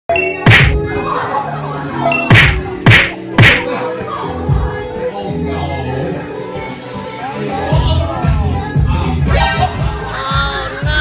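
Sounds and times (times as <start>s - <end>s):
background music: 0.1s - 11.0s
sharp whacks: 0.4s - 0.8s, 2.3s - 3.7s.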